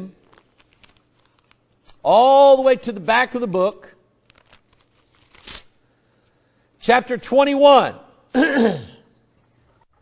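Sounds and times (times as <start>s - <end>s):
pages turning: 0.2s - 2.7s, 4.2s - 6.3s.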